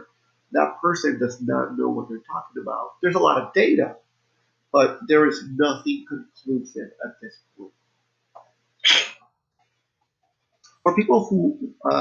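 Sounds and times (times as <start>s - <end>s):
person sneezing: 8.8s - 9.2s.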